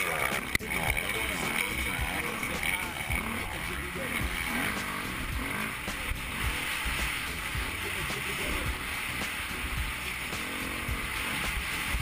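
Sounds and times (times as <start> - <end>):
motocross engine revving: 0.0 - 12.0.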